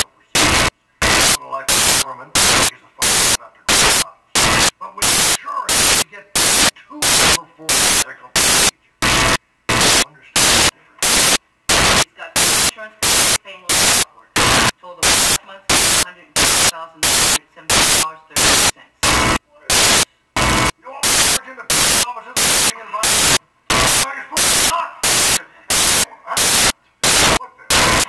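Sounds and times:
faint dialogue: 0.0 - 28.0
hissing static bursts: 0.0 - 28.0.

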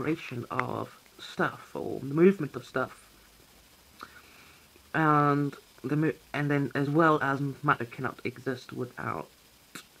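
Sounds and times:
soft intake of breath: 3.9 - 4.8.

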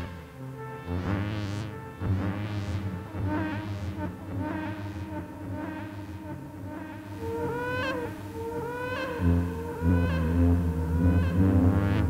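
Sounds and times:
low drone: 2.8 - 12.0.

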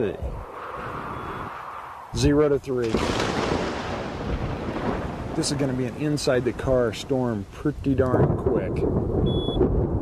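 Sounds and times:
thunder rumble: 0.0 - 10.0.

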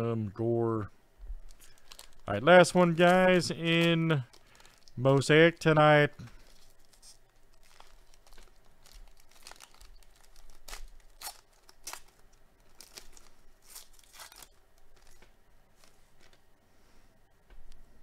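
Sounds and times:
foil wrapper crinkling and tearing: 1.5 - 15.3.

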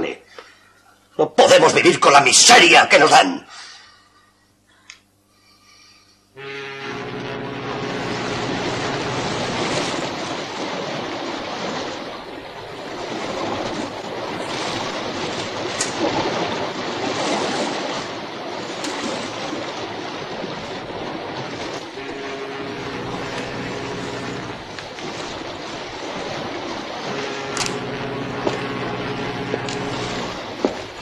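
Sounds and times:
waves rushing: 6.4 - 31.0.

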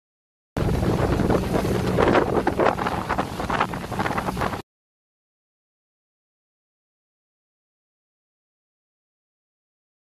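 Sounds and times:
water churning along hull: 0.6 - 4.6
wind buffeting microphone: 0.6 - 4.6.

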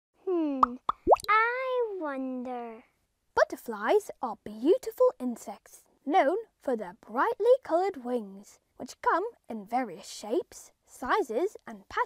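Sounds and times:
high child-like voice: 0.3 - 2.9
cartoon pop plops: 0.5 - 1.3.

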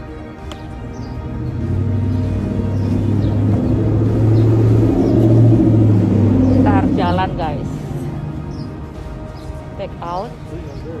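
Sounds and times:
vehicle engine rumble passing: 0.8 - 11.0.

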